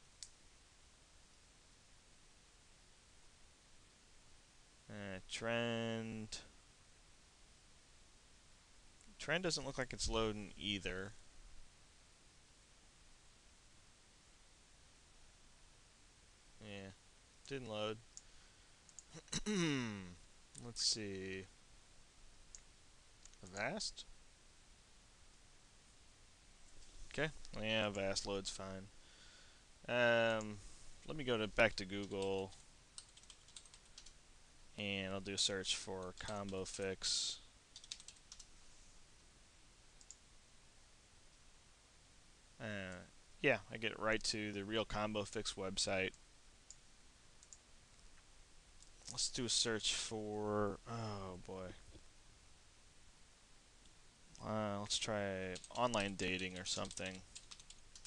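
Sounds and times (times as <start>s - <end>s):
low steady hiss: 0.0s - 58.0s
wordless vocal sound: 19.1s - 20.8s, 49.6s - 51.8s
computer mouse clicks: 40.0s - 40.2s, 55.5s - 58.0s.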